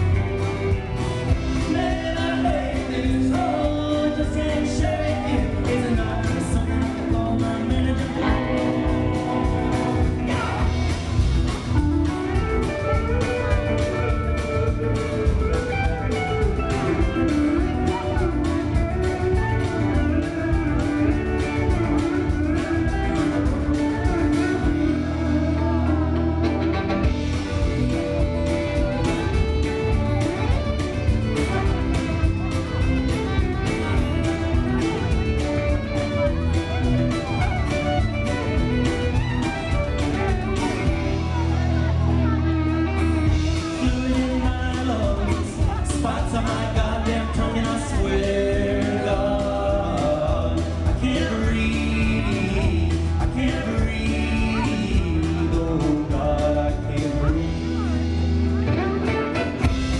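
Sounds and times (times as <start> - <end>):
country band playing: 0.0 - 59.9
drum kit: 0.0 - 59.9
fiddle: 0.0 - 59.9.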